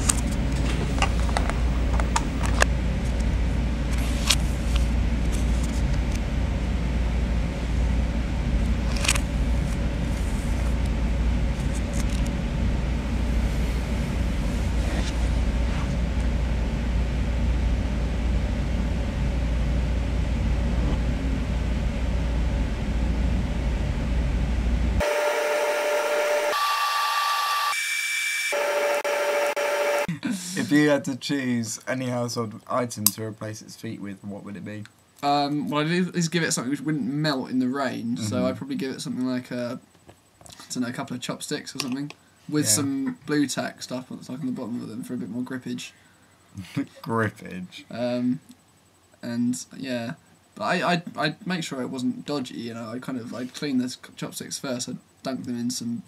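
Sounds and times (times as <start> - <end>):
low rumble with hiss: 0.0 - 25.0, 30.2 - 56.0
clean held tones: 25.0 - 30.2.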